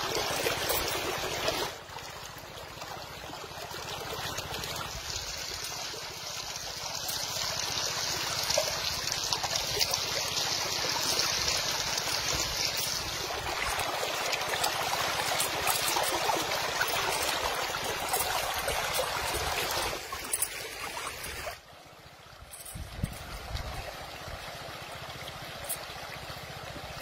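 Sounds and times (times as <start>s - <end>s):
river water splashing: 0.0s - 27.0s
metal chain clinking: 0.2s - 1.7s, 9.5s - 21.6s, 22.5s - 23.2s, 25.6s - 25.9s.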